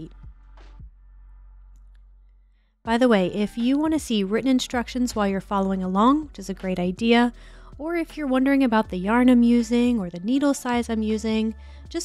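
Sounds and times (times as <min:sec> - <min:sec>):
woman speaking: 0:02.9 - 0:12.0.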